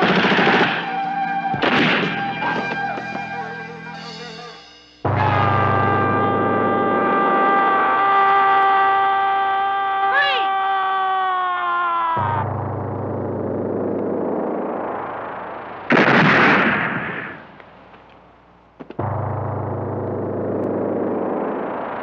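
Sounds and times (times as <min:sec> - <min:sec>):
gunshot blast: 0:00.0 - 0:01.0, 0:01.6 - 0:03.1, 0:15.9 - 0:17.6
sharp gunshot cracks: 0:00.0 - 0:01.0, 0:01.6 - 0:03.1, 0:15.9 - 0:17.6
low synthesizer drone: 0:00.0 - 0:10.8, 0:12.2 - 0:22.0
siren falling note: 0:05.0 - 0:09.4, 0:12.2 - 0:17.5, 0:19.0 - 0:22.0.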